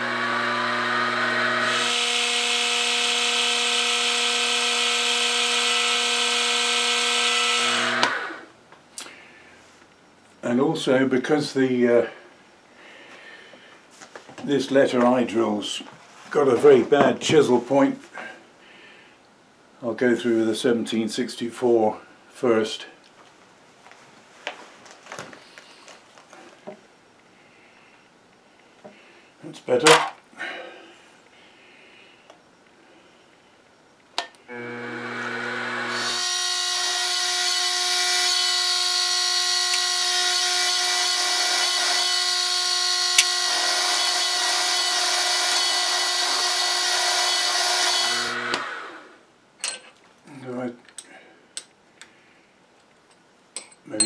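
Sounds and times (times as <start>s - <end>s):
milling spindle starting up: 0.0s - 8.4s, 34.5s - 49.1s
drill boring through metal: 0.0s - 8.5s, 34.5s - 49.2s
sharp tick of drill: 39.6s - 39.9s, 43.0s - 43.4s, 48.0s - 48.7s.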